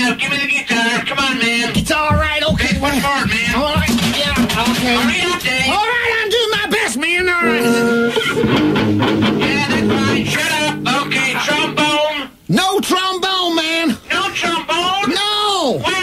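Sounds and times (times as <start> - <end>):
rock music with electric guitar: 7.4 - 11.9.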